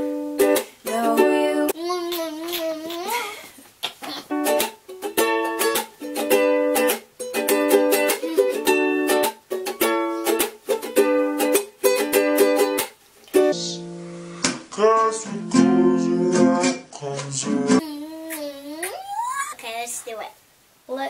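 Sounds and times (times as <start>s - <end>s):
ukulele strumming: 0.0s - 3.1s, 4.2s - 13.9s, 15.3s - 17.8s
woman singing: 0.8s - 3.4s.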